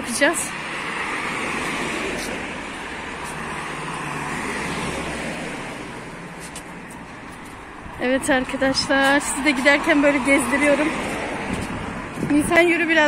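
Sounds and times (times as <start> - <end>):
car tyres rushing past: 0.5 - 7.9.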